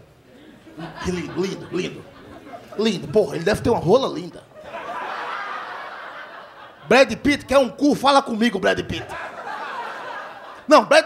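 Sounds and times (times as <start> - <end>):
audience laughing: 0.3 - 7.8, 8.5 - 11.0.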